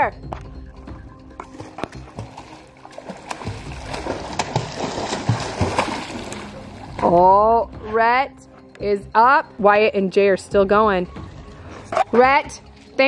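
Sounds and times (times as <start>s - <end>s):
faint background music: 0.0s - 13.0s
pool water splashing: 1.4s - 7.5s.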